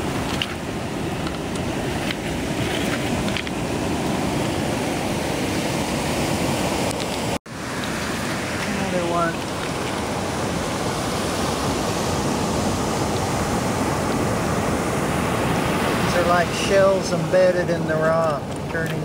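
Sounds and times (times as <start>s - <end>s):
ocean surf on cobble beach: 0.0s - 19.0s
wind: 0.0s - 19.0s.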